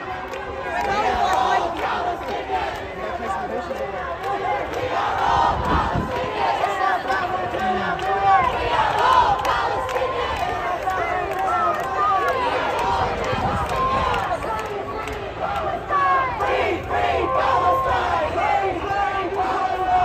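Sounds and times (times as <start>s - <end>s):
crowd shouting and talking: 0.0s - 20.0s.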